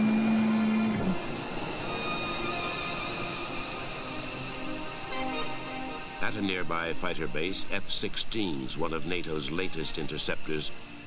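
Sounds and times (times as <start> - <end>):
jet engine whining: 0.0 - 11.0.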